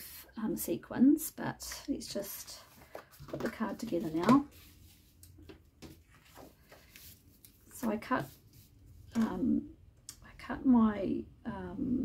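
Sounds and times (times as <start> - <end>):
cardstock taps and rustles: 2.8 - 4.6, 5.4 - 8.0.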